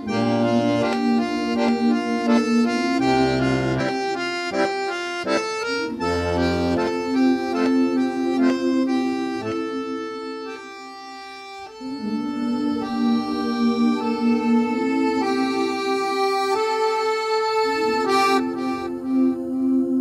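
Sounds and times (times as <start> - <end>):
button accordion playing chords: 0.0 - 20.0.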